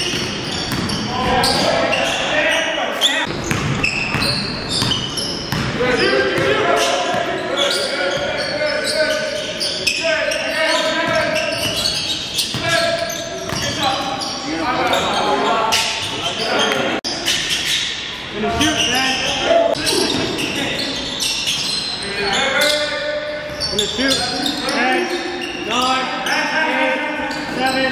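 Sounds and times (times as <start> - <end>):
person talking in a gymnasium: 1.0 - 3.5, 5.6 - 27.9
basketball bouncing on hardwood: 3.3 - 5.8.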